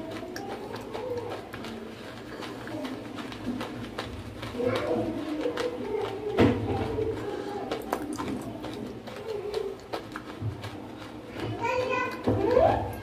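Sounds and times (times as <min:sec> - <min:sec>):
chewing crunchy clay: 0:00.0 - 0:13.0.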